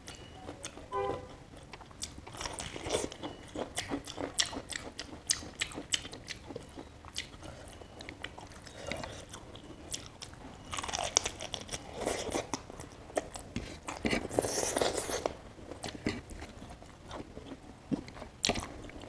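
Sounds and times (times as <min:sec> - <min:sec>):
person chewing crunchy food: 0:00.0 - 0:19.0.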